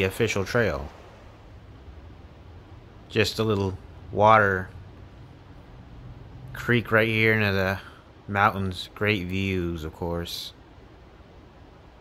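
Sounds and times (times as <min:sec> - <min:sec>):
low hum: 0:00.0 - 0:09.1
faint steady hiss: 0:00.0 - 0:12.0.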